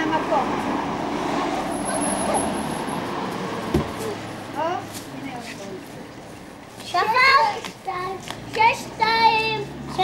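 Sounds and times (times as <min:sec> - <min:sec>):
passing road vehicle rushing: 0:00.0 - 0:06.6.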